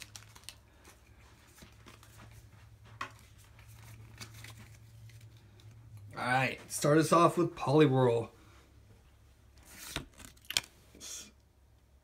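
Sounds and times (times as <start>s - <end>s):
foil wrapper crinkling and tearing: 0.0s - 0.8s, 10.0s - 10.7s.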